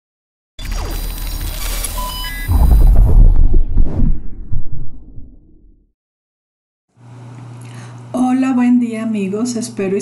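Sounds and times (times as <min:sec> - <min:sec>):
short electronic bleeps: 0:00.6 - 0:02.8
deep bass boom rumbling: 0:02.5 - 0:05.9.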